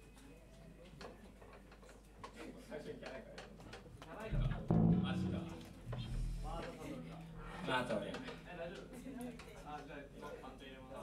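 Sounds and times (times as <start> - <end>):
bass guitar: 4.3 - 7.8
people talking: 4.3 - 10.8
electric guitar: 4.5 - 7.6.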